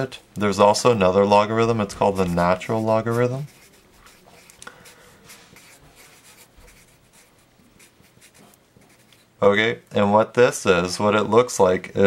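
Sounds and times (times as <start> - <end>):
marker scratching on paper: 1.7 - 9.3.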